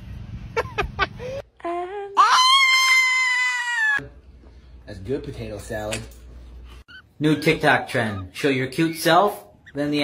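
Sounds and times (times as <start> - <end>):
high-pitched wailing cry: 2.2 - 4.0.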